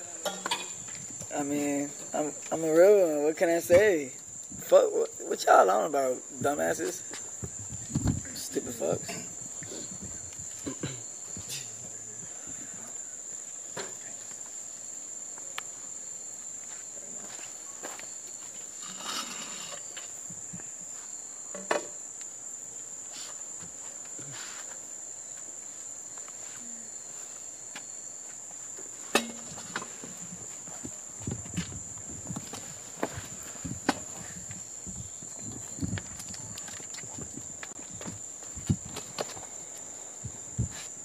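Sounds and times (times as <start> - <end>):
crickets chirping: 0.0 - 41.0.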